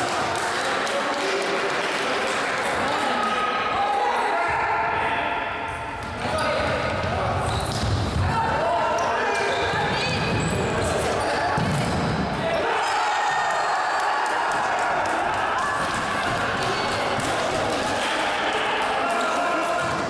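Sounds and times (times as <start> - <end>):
voices shouting in echoing hall: 0.0 - 20.0
ball bouncing on wooden court: 11.4 - 12.4.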